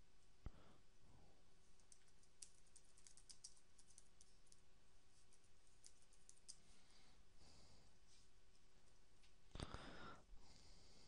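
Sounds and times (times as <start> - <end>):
keyboard typing: 1.8 - 4.6.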